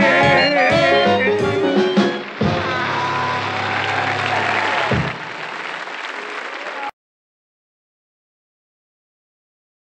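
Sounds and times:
audience applause: 1.1 - 7.0.

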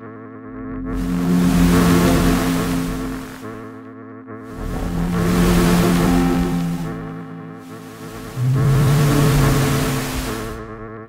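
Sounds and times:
buzzing synthesized texture: 0.4 - 11.0
loud low tone: 4.5 - 11.0.

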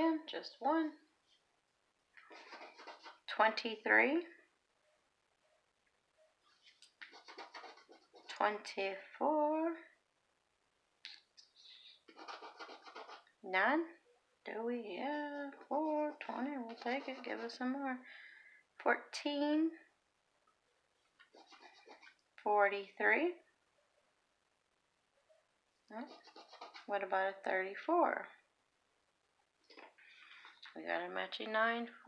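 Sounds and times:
scratch-off ticket being scratched: 2.2 - 3.3, 6.7 - 8.6, 11.6 - 13.3, 15.5 - 17.6, 21.2 - 22.2, 26.0 - 27.0
coin scratching lottery ticket: 2.3 - 3.2, 7.1 - 8.4, 12.1 - 13.3.

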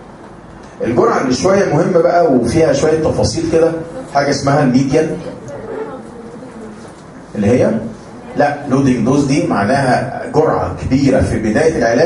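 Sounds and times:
faint low hum: 0.0 - 12.0
man speaking: 0.8 - 5.8, 7.3 - 12.0.

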